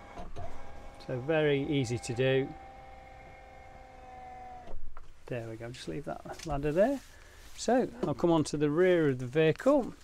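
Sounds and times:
bed lift motor whining: 0.0 - 4.9.

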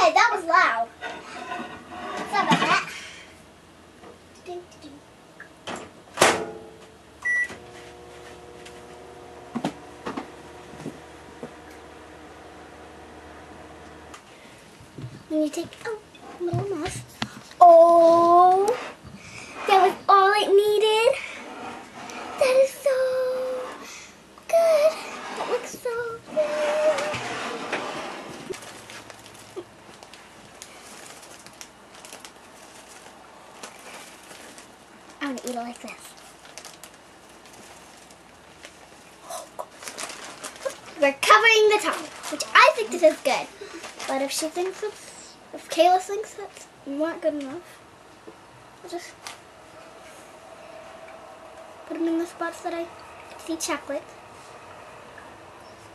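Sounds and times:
microwave humming: 5.4 - 18.7, 19.7 - 36.0
microwave beep: 7.2 - 7.6
plastic bag rustling: 24.8 - 45.7.

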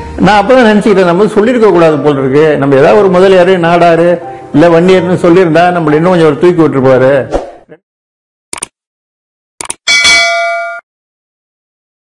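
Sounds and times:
bright bell ding: 9.9 - 10.9.

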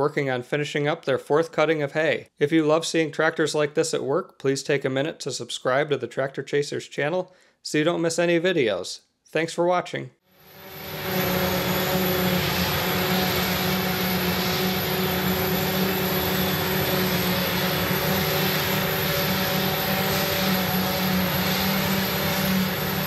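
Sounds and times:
forage harvester droning: 10.4 - 23.0.

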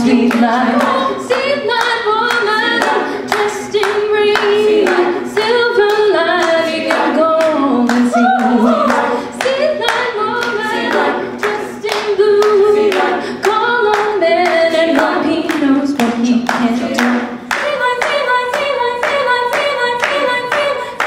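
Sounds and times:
a cappella group singing: 0.0 - 21.0
hand claps: 0.1 - 21.0.

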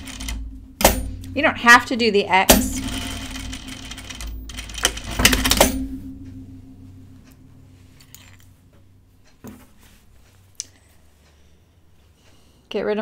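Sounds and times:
sewing machine stitching: 0.0 - 1.0, 2.5 - 5.8.

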